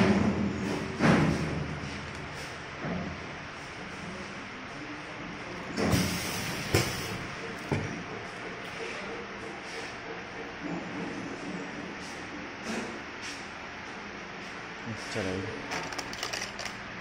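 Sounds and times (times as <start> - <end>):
stamping press hissing surge: 5.8 - 7.2.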